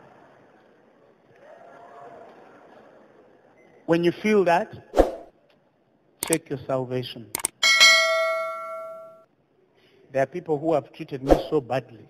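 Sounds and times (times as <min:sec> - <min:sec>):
bell-like ding: 0:07.6 - 0:09.2.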